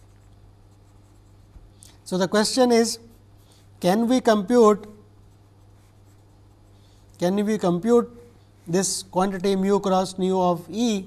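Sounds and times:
marker scratching on paper: 0.0s - 1.9s, 5.2s - 7.4s
low steady hum: 0.0s - 11.0s.

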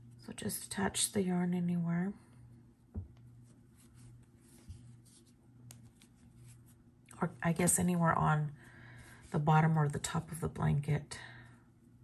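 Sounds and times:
steady low hum: 0.0s - 12.0s
small knock: 2.9s - 3.2s
crochet hook rubbing yarn: 3.4s - 7.9s.

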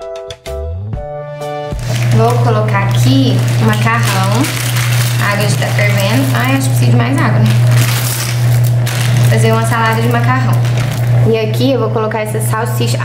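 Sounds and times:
loud steady low hum: 1.8s - 13.0s
woman talking: 2.0s - 8.0s, 9.1s - 13.0s.

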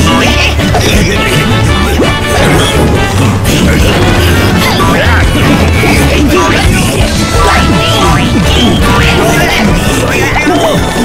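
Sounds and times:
cartoon music: 0.0s - 11.0s
cartoon sound effects: 0.1s - 11.0s.

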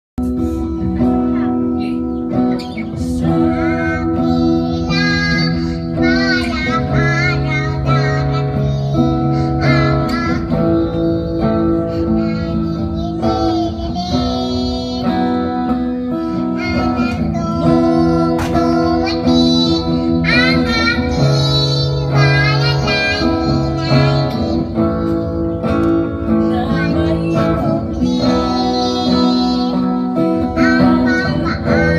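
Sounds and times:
acoustic guitar: 0.2s - 31.9s
girl singing: 0.3s - 31.9s.

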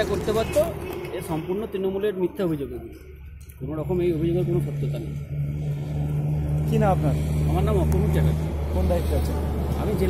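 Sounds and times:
vehicle engine running: 3.1s - 10.0s.

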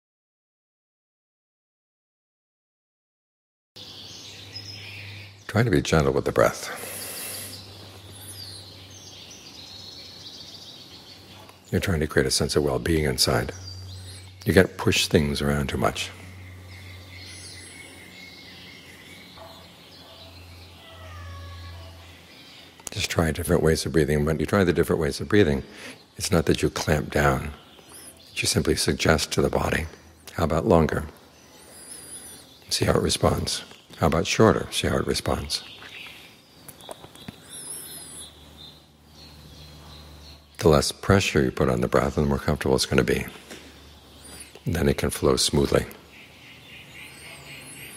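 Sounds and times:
distant bird trill: 3.8s - 47.9s
steady low hum: 3.8s - 47.9s
faint thin bird calls: 19.4s - 22.2s.

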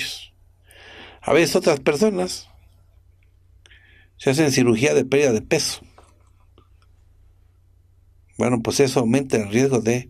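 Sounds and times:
low room hum: 0.0s - 10.0s
faint small clicks: 3.1s - 3.8s.

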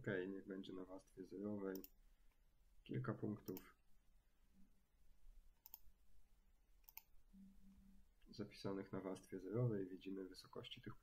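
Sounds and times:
computer mouse clicks: 1.7s - 2.0s, 3.4s - 3.7s, 5.6s - 5.9s, 6.8s - 7.1s.

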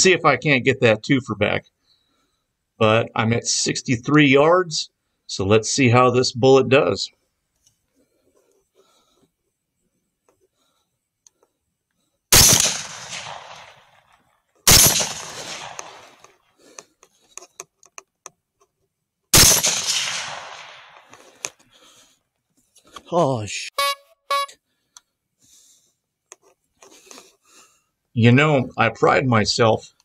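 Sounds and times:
rifle shots with rolling echo: 12.3s - 16.4s, 19.3s - 21.3s.

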